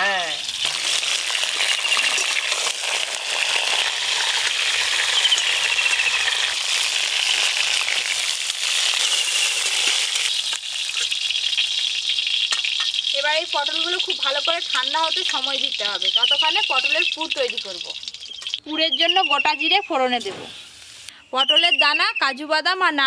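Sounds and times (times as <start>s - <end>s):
vegetables sizzling in hot oil: 0.0s - 18.6s, 20.1s - 21.1s.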